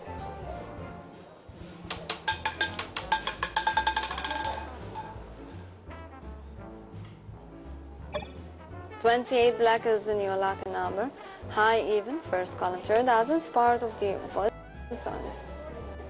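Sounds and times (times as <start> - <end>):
background music with bass: 1.6 - 9.0, 14.3 - 16.0
roulette ball rattling on wheel: 1.9 - 5.2.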